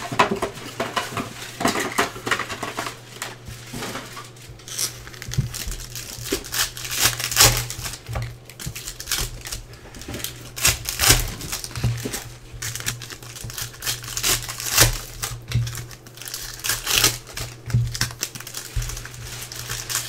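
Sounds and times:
foil wrappers torn and crinkled: 0:00.0 - 0:20.0.

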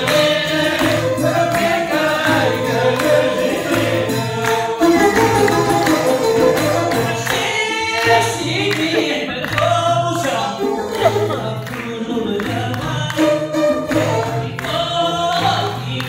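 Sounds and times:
long-necked lutes playing: 0:00.0 - 0:07.4, 0:10.6 - 0:15.1
man singing into a microphone: 0:06.8 - 0:16.0.

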